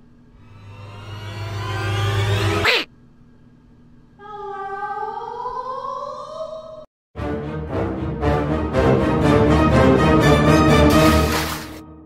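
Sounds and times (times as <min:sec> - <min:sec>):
long rising tone: 0:00.4 - 0:02.6.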